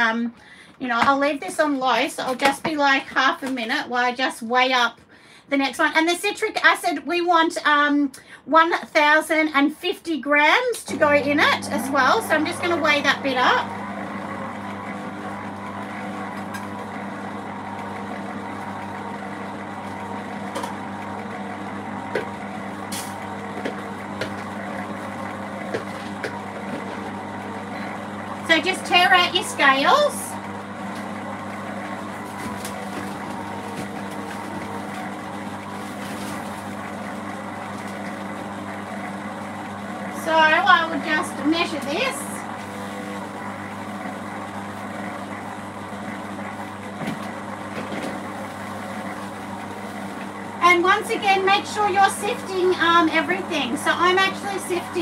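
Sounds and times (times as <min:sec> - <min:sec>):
stand mixer motor humming: 0:10.9 - 0:55.0.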